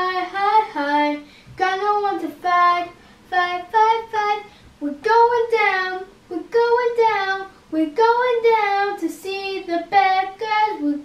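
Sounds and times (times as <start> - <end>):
child singing: 0.0 - 11.0.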